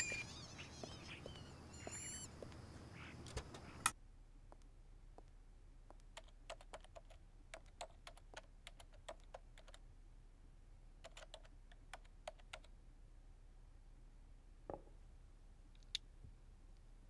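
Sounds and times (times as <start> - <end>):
laptop keyboard typing: 5.9 - 9.8, 11.0 - 12.7.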